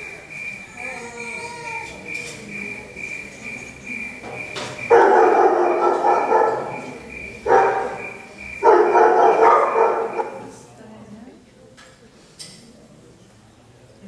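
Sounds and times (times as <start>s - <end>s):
drawn-out vocal cries: 0.6s - 2.1s.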